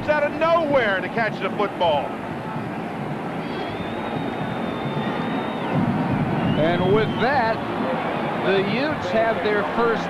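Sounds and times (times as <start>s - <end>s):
stadium crowd noise: 0.0s - 10.0s
high whistle-like tone: 3.4s - 7.6s.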